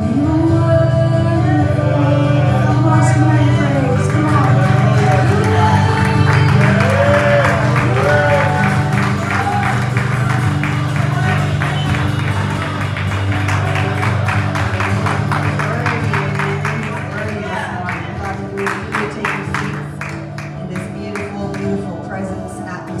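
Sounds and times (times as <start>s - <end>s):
worship band playing: 0.0s - 22.8s.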